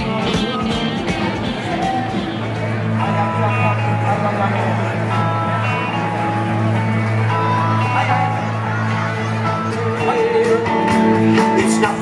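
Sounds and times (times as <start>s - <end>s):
crowd chatter: 0.0s - 12.0s
live rock and roll band: 0.0s - 12.0s.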